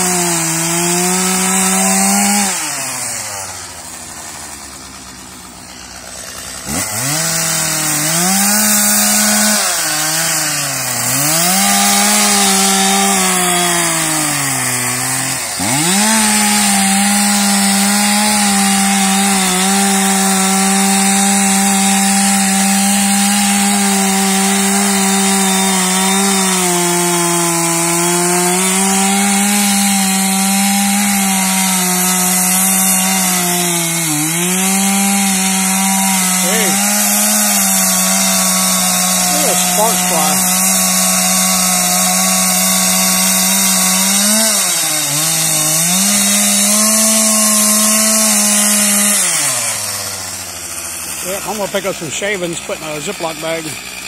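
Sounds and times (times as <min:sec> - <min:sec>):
chainsaw cutting wood: 0:00.0 - 0:54.0.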